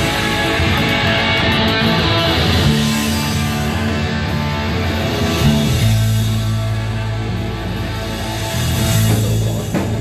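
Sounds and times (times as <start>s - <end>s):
drums: 0.0s - 10.0s
electric guitar: 0.0s - 10.0s
rock band playing instrumental: 0.0s - 10.0s.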